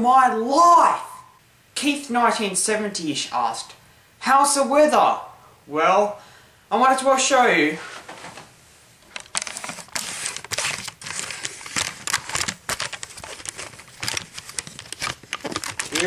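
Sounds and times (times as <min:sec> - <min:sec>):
camera handling rustles and clicks: 0:09.0 - 0:16.0.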